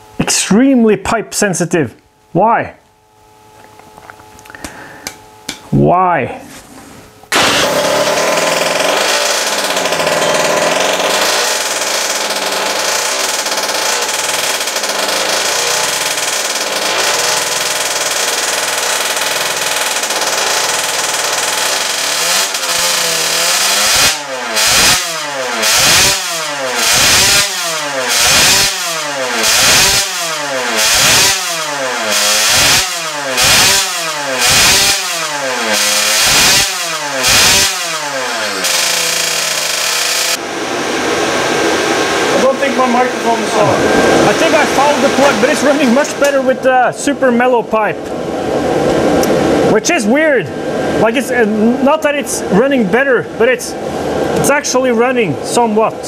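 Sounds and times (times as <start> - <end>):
small two-stroke engine revving: 7.3 - 46.5.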